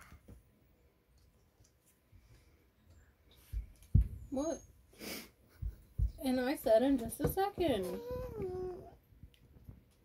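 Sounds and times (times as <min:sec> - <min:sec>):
pet whining: 0:07.7 - 0:09.1.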